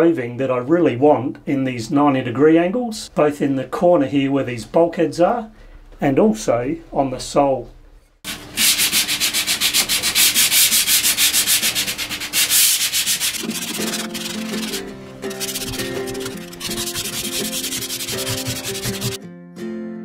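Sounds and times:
hand sanding wood: 8.3 - 19.2
acoustic guitar music: 13.1 - 20.0.

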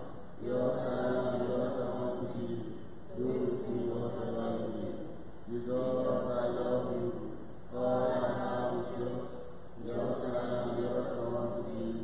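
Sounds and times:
liturgical chant: 5.6 - 12.0.

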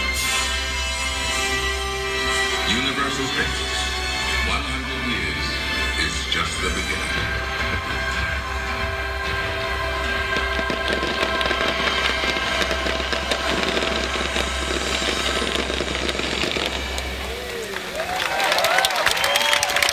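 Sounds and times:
music: 0.0 - 17.3
fireworks crackling and bursting: 0.0 - 19.9
crowd cheering: 16.6 - 19.9.

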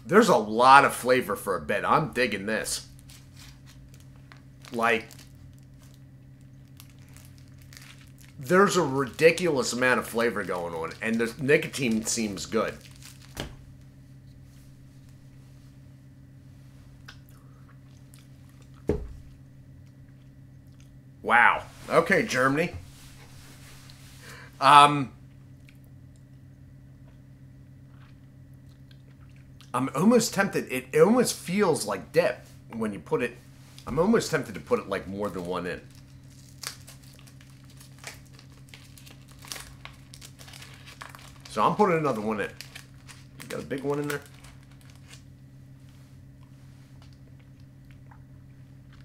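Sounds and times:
steady low hum: 0.0 - 49.0
package crinkling and rustling: 2.9 - 13.9, 35.2 - 45.3.

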